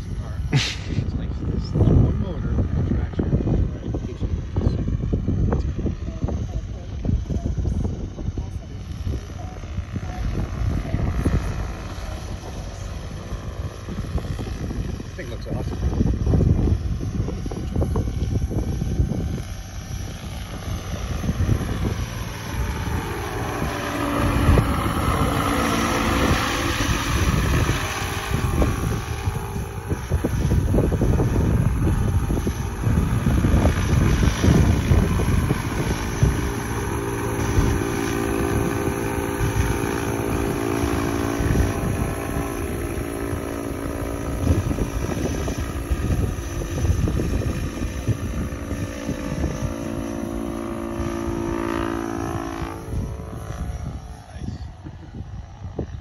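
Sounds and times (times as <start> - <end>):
electric motor whine: 0.0 - 56.0
helicopter rotor blade chop: 0.0 - 56.0.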